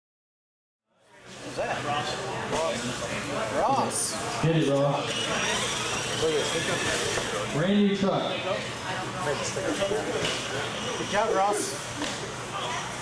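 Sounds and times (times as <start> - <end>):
people talking indistinctly: 1.2 - 13.0
toy truck electric motor whine: 5.0 - 7.6, 8.6 - 11.7.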